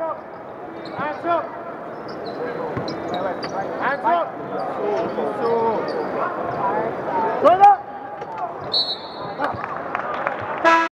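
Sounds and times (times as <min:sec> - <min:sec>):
buzzer horn: 0:10.6 - 0:10.9.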